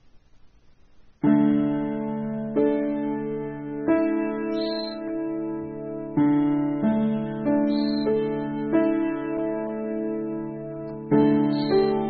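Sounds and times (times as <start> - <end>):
faint hiss: 0.0 - 12.0
piano chord ringing: 1.2 - 12.0.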